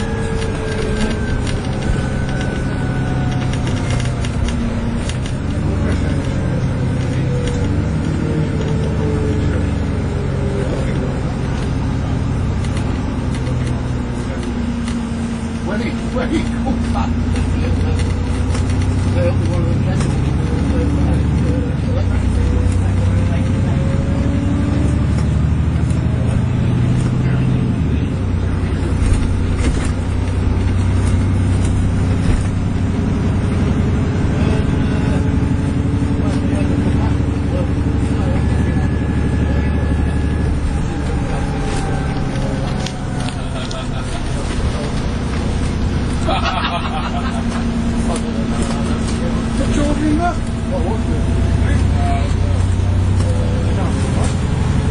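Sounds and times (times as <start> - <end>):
faint rising whines: 0.0 - 5.5
bus engine and road rumble: 0.0 - 54.9.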